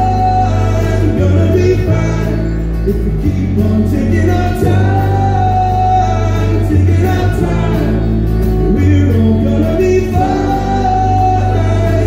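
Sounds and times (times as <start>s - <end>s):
live country band playing: 0.0s - 12.0s.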